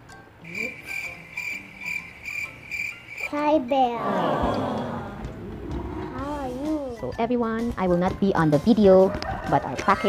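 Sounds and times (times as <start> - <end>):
cricket chirp trill: 0.4 - 3.4.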